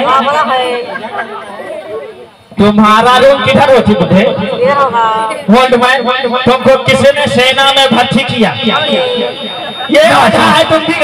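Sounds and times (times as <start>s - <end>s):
background chatter: 0.0s - 11.0s
voices talking: 0.0s - 11.0s.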